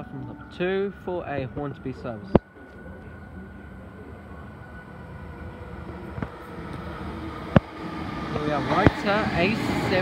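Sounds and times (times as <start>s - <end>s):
electric train approaching: 0.0s - 10.0s.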